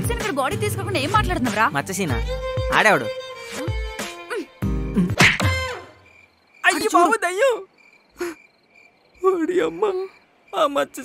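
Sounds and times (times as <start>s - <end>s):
man wailing cry: 3.6s - 5.2s
crickets chirping: 4.4s - 11.0s.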